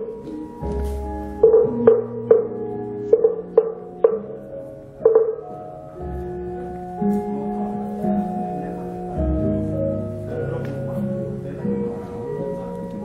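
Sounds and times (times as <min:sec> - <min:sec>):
gamelan playing: 0:00.0 - 0:10.5.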